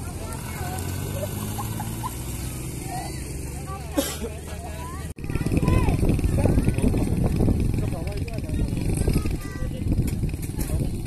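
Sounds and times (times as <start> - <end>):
people chattering: 0.0 - 11.0
rough low rumble: 5.1 - 11.0.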